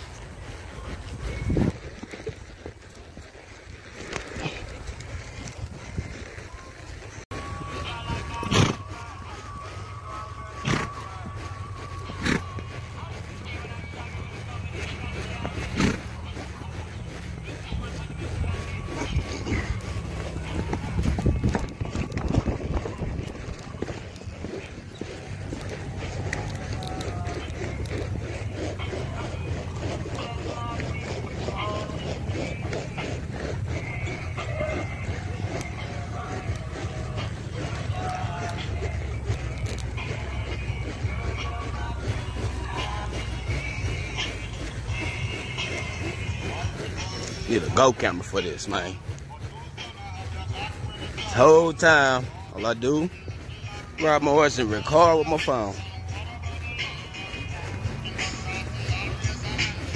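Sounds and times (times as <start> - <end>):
indistinct voices: 0.0 - 2.1, 4.0 - 59.9
low wind rumble: 0.0 - 48.0, 48.8 - 54.1
music: 7.3 - 59.9.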